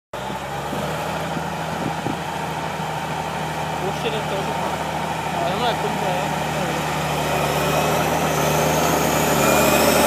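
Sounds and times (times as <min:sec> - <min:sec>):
tractor diesel engine running: 0:00.1 - 0:10.0.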